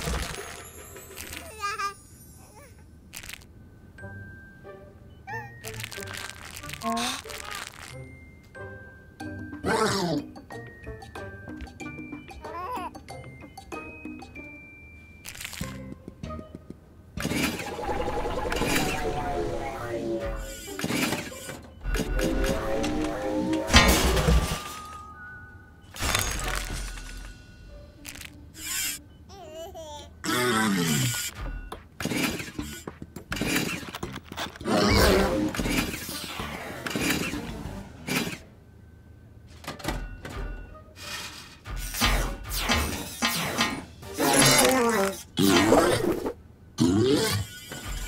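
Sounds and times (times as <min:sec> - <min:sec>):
cartoon music: 0:05.2 - 0:08.1, 0:11.0 - 0:14.4, 0:17.6 - 0:20.6.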